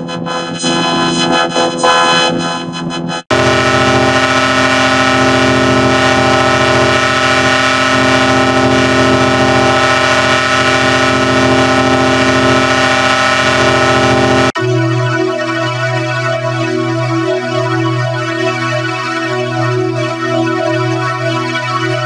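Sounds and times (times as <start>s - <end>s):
synthetic stacked chord: 3.3s - 14.6s.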